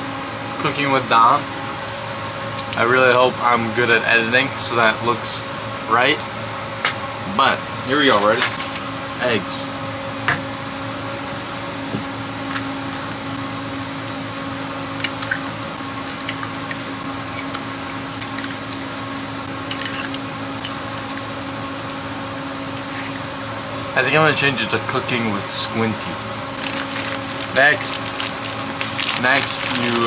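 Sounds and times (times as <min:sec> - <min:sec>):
steady machine hum: 0:00.0 - 0:30.0
eggs cracking: 0:14.0 - 0:18.9, 0:19.6 - 0:22.0.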